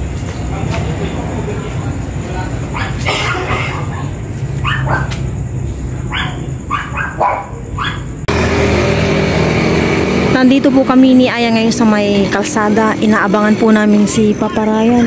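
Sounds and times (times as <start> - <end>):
dog barking: 2.7 - 4.0, 4.6 - 5.2, 6.0 - 8.2
loud steady noise: 8.2 - 15.0.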